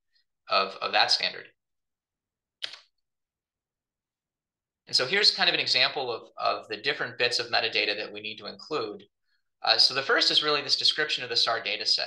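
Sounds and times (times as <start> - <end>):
short click: 2.6 - 2.9.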